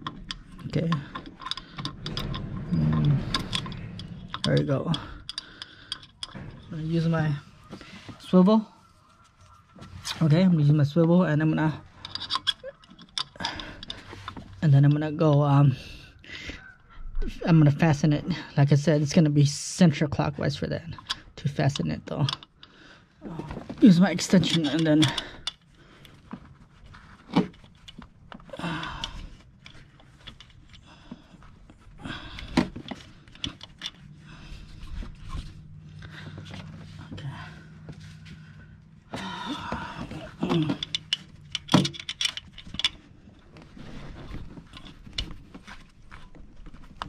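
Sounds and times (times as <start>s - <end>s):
metal tool clinks and knocks: 12.0s - 14.1s, 39.6s - 43.0s.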